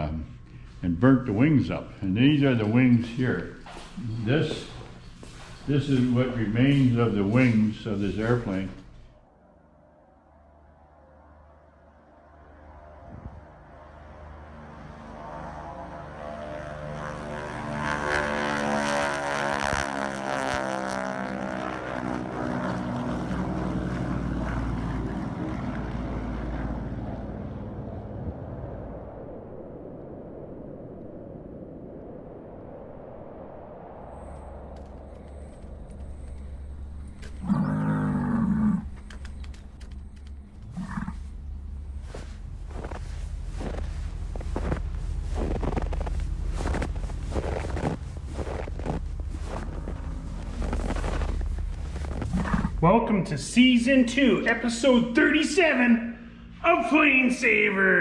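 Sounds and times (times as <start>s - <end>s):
propeller plane engine drone: 0.0s - 58.0s.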